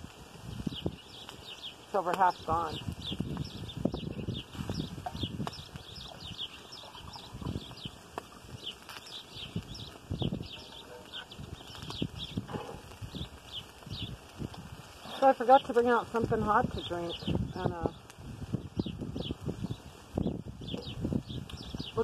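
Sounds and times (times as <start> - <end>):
small birds chirping: 0.0 - 22.0
wind rumbling on microphone: 0.0 - 22.0.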